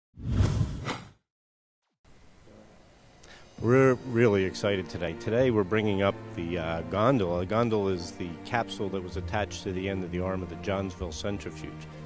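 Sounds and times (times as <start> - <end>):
whoosh sound effect: 0.2 - 1.2.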